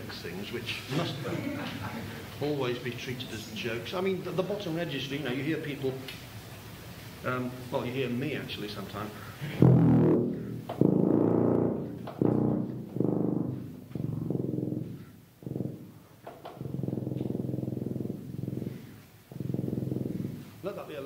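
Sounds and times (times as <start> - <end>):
tuba playing low notes: 9.3 - 20.7.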